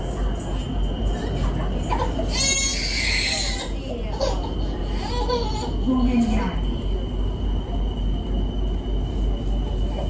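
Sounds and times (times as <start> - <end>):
passengers' voices: 0.0 - 10.0
train carriage rumble: 0.0 - 10.0.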